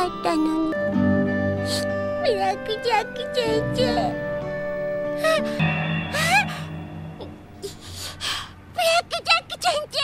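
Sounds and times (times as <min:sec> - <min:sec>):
soft background music: 0:00.0 - 0:09.2
girl crying and sobbing: 0:05.0 - 0:06.8, 0:07.6 - 0:08.6.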